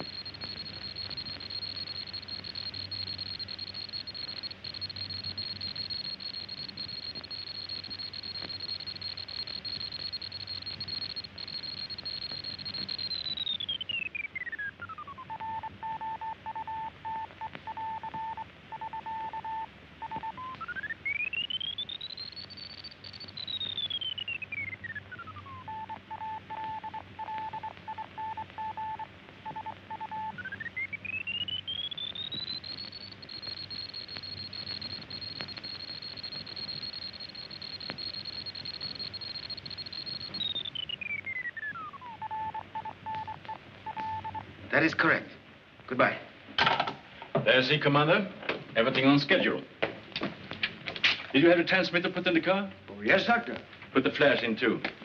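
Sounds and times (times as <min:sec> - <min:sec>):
keyed beeps: 0:00.0 - 0:44.4
radio signal whistle: 0:00.0 - 0:44.4
faint low hum: 0:00.0 - 0:46.4.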